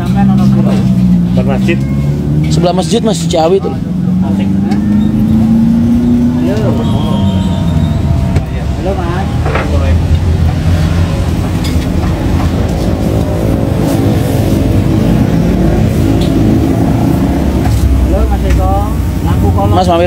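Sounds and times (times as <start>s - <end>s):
bus engine rumble: 0.0s - 20.0s.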